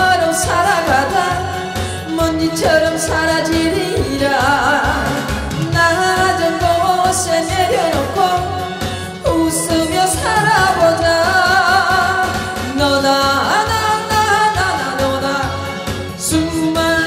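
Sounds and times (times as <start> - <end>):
band backing music: 0.0 - 17.0
woman singing into microphone: 0.0 - 17.0.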